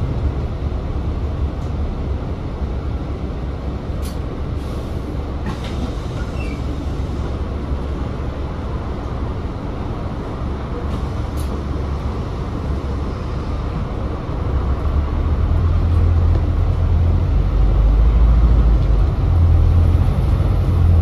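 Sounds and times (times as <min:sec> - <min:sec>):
bus diesel engine rumbling: 0:00.0 - 0:21.0.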